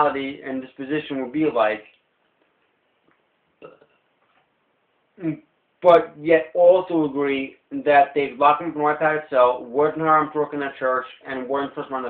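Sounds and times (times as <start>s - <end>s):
man's throat sound: 3.6s - 4.0s.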